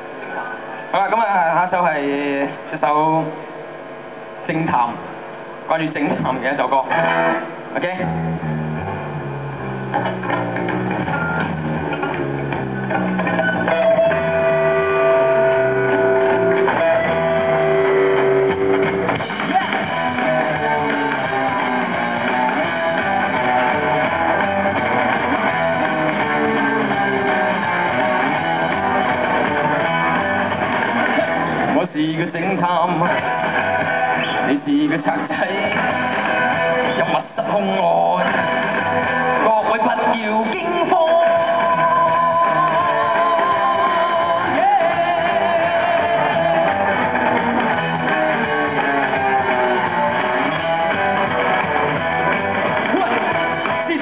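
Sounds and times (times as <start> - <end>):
long held guitar notes: 6.9 - 31.8, 38.2 - 54.0
rock band playing live: 6.9 - 54.0.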